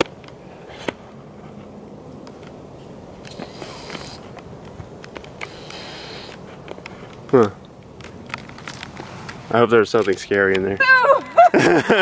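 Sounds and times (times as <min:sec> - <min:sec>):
clothing rustle: 0:08.1 - 0:09.5.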